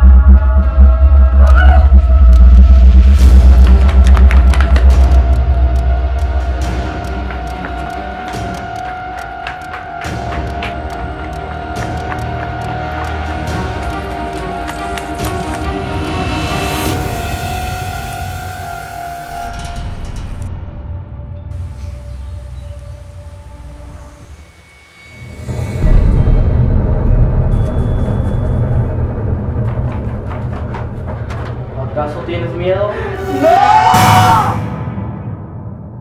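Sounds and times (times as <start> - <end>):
droning horror score tones: 0.0 - 34.2.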